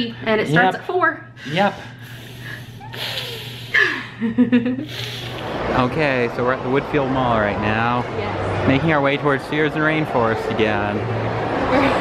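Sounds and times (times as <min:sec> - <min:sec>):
man and woman laughing: 0:02.5 - 0:05.5.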